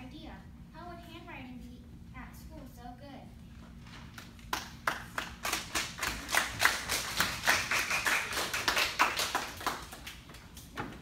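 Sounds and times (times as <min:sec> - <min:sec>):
small audience applauding: 0:04.2 - 0:11.0.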